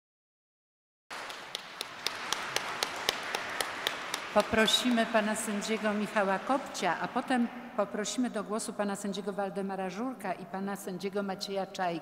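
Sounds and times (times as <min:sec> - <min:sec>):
audience applause: 0:01.1 - 0:07.4.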